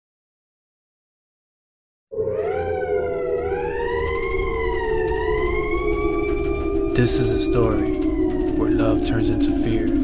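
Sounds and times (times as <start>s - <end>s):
siren-like wail: 2.1s - 10.0s
steady low drone: 2.1s - 10.0s.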